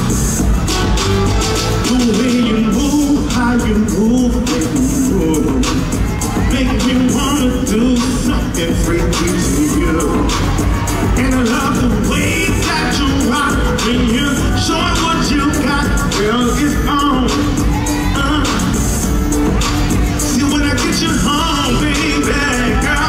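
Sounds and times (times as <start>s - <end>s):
loud amplified soul music: 0.0s - 23.0s
man singing into microphone: 1.8s - 19.1s, 20.2s - 23.0s.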